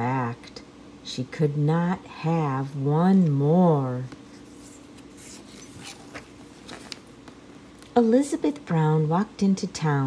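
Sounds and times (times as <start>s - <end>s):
book page turning: 4.1s - 7.4s.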